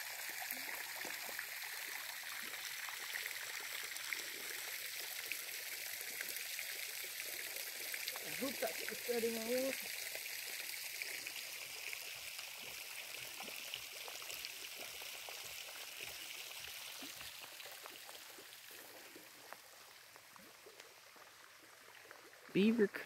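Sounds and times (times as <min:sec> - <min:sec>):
water splashing in fountain: 0:00.0 - 0:23.0.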